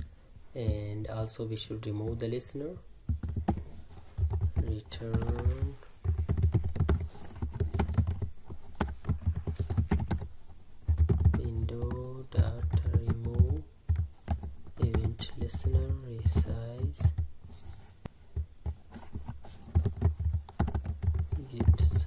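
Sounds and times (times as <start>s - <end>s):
computer keyboard typing: 3.1s - 17.3s, 18.4s - 22.0s.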